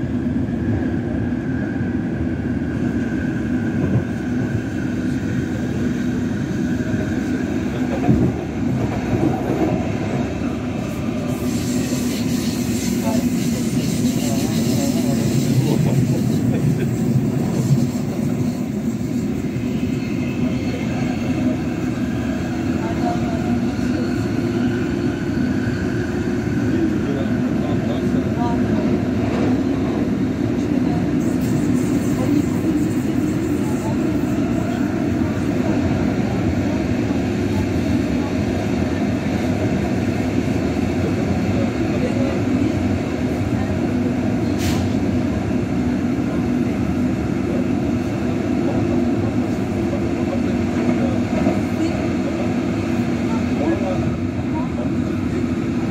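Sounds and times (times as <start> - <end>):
wheels rumbling on rail: 0.0 - 55.9.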